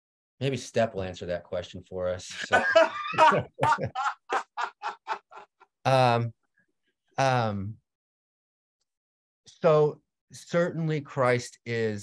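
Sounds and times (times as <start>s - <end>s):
man laughing heartily: 2.4s - 5.7s.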